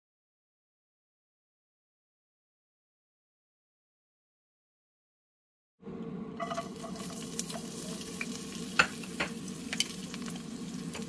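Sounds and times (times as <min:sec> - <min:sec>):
garlic sizzling in oil: 0:06.4 - 0:11.0.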